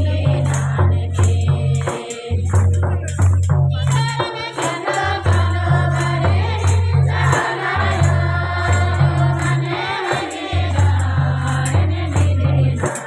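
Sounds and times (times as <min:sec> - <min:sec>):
group of voices singing: 0:00.0 - 0:13.0
jingling percussion: 0:00.0 - 0:13.0.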